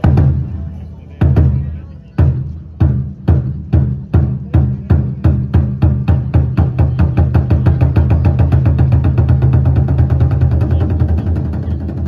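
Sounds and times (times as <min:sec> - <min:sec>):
taiko drum roll: 0:00.0 - 0:00.5, 0:02.2 - 0:12.0.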